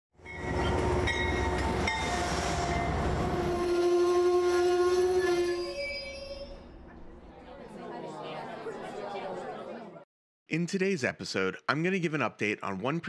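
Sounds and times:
train rumbling past: 0.2 - 5.6
train horn: 0.8 - 6.5.

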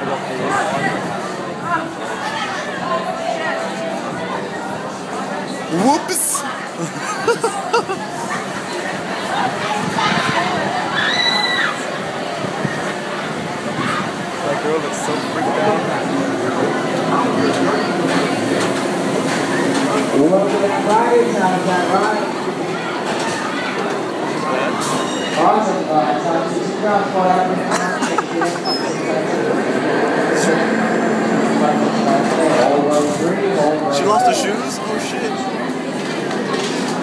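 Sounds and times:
background voices and chatter: 0.0 - 37.0
people talking over one another: 0.0 - 37.0
roller coaster mechanical hum: 6.6 - 24.2, 27.4 - 33.6
laughter: 6.8 - 8.2, 27.7 - 28.7.

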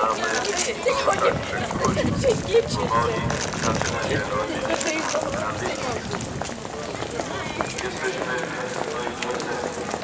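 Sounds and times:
crowd footsteps on paving stones: 0.0 - 10.0
many people talking: 0.0 - 10.0.

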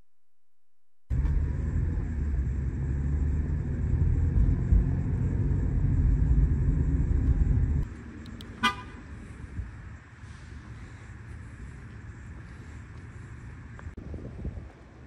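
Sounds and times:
car cabin road rumble: 1.1 - 14.0
short car horn beep: 8.6 - 9.0.

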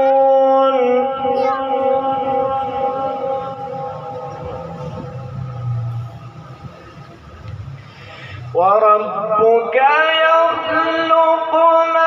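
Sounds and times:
man reciting through loudspeaker: 0.0 - 5.3, 8.4 - 12.0
low hum: 1.1 - 8.6.

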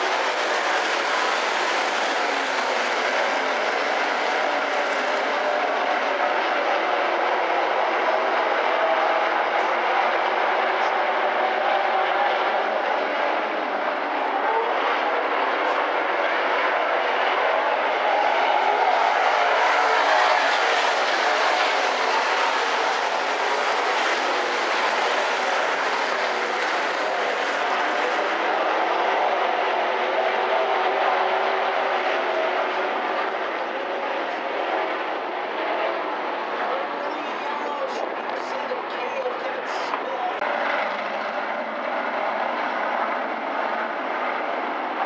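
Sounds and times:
race car engines droning: 0.0 - 45.0.

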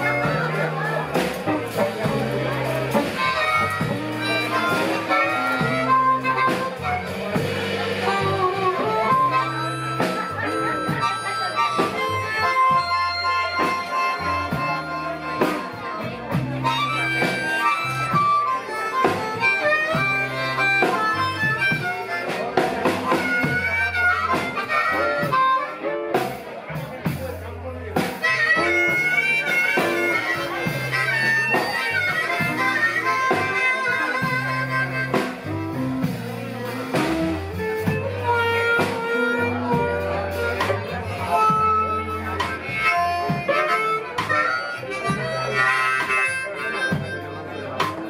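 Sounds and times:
electric bass: 0.0 - 46.2
blues harmonica: 0.0 - 48.0
drums: 0.0 - 48.0.

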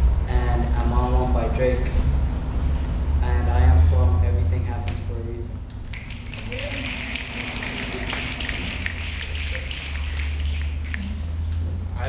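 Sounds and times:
group applauding: 5.7 - 11.6.

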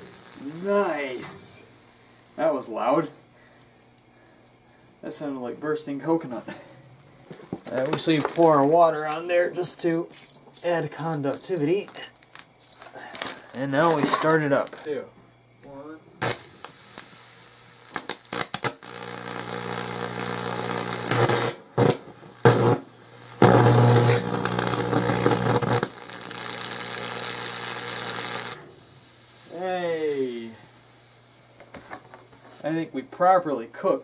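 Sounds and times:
electrical arcing crackling and pops: 0.0 - 3.1, 7.4 - 15.0, 16.2 - 28.8
transformer buzzing: 17.8 - 28.7.

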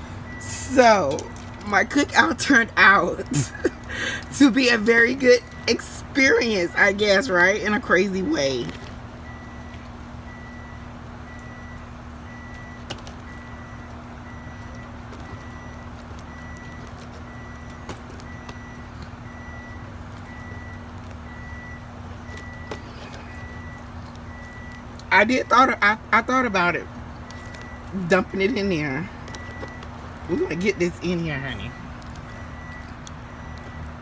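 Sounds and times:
reversing alarm beeping: 0.0 - 2.5, 9.2 - 34.0
low engine rumble: 0.0 - 34.0.

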